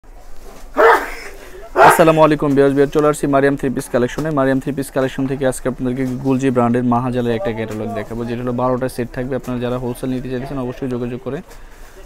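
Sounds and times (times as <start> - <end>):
man speaking: 1.8 - 11.5.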